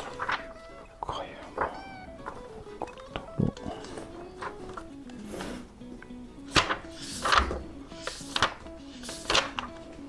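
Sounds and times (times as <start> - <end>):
paper pages turning: 0.0 - 2.5, 6.5 - 10.0
soft background music: 0.0 - 10.0.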